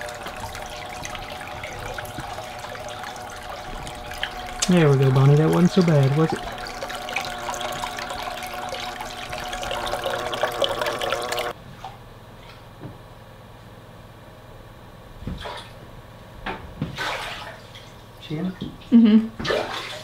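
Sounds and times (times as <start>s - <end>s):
water splashing into plastic tub: 0.0s - 11.5s, 16.9s - 17.9s, 19.4s - 20.0s
motor hum: 0.0s - 11.6s.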